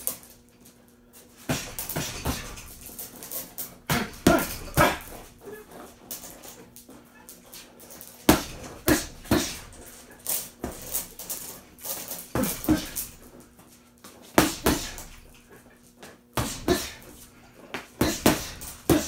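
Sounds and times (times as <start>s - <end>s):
boxing gloves hitting punching bag: 1.4s - 5.6s, 8.2s - 13.4s, 14.3s - 15.4s, 16.3s - 19.0s.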